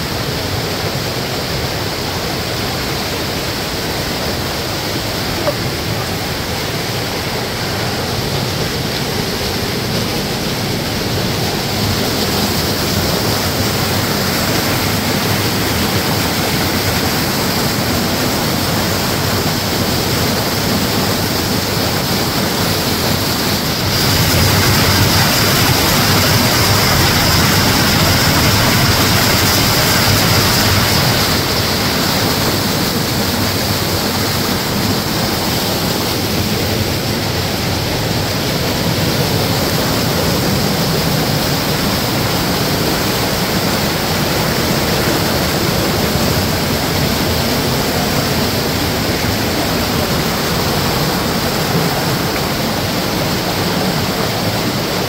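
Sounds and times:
waterfall rushing over rock: 0.0 - 55.0.

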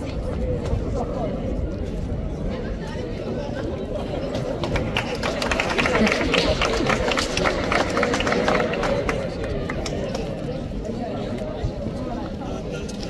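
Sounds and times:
crowd chatter: 0.0 - 13.0
audience applause: 4.4 - 10.3.

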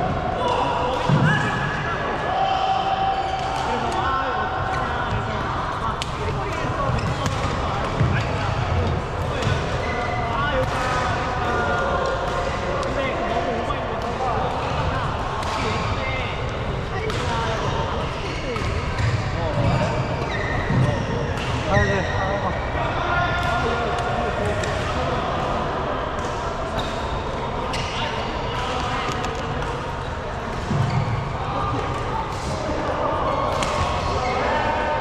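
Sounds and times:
hubbub of voices: 0.0 - 35.0.

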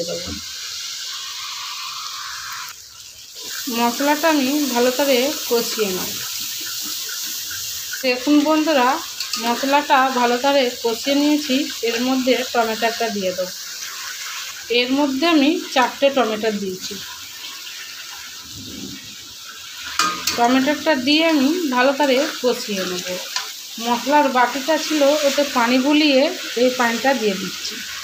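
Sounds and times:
paste sizzling in oil: 0.0 - 28.0
spatula stirring in pan: 3.0 - 14.7, 16.9 - 28.0.

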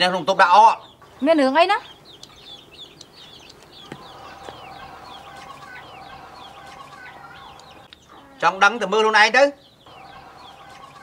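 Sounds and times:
chickens chirping: 0.0 - 11.0.

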